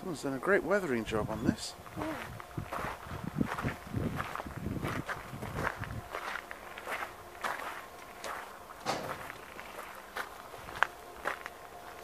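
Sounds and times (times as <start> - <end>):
footsteps on gravel: 1.8 - 12.0.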